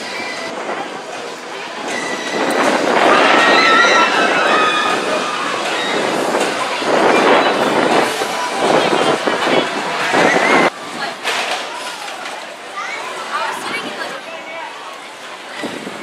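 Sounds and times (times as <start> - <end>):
roller coaster clattering rumble: 0.0 - 14.2.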